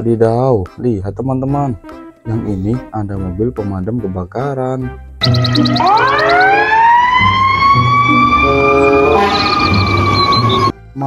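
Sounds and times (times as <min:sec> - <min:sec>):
background music with beat: 0:01.6 - 0:03.7, 0:04.8 - 0:11.0
fire engine siren wailing: 0:05.2 - 0:10.8.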